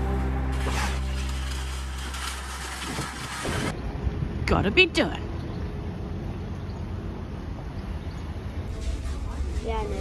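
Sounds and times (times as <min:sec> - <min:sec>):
background music: 0:00.0 - 0:02.8
outdoor noise: 0:00.0 - 0:10.0.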